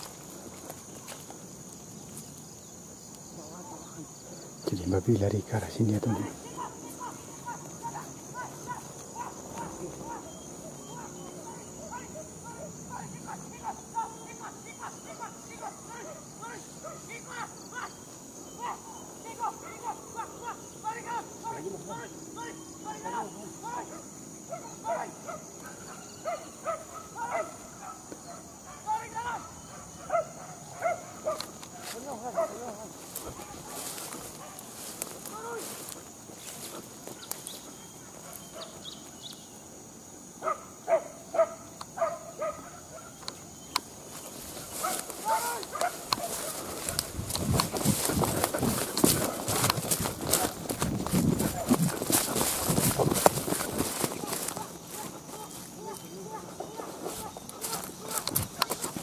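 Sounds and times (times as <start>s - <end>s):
hunting dogs barking and yelping: 3.5s - 39.4s, 40.2s - 59.0s.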